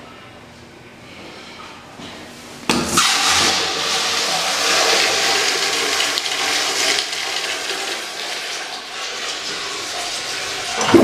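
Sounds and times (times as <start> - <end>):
urinal flushing: 2.9 - 11.0.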